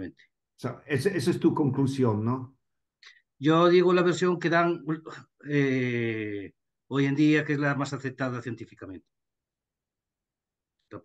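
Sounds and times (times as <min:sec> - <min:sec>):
person speaking on video call: 0:00.0 - 0:11.0.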